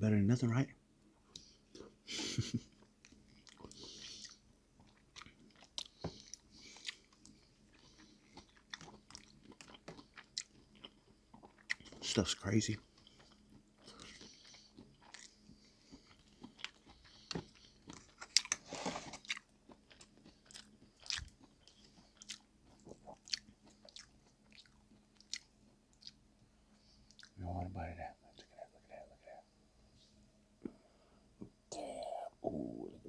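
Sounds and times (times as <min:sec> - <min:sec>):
person chewing food: 0:01.3 - 0:12.1, 0:12.8 - 0:27.4.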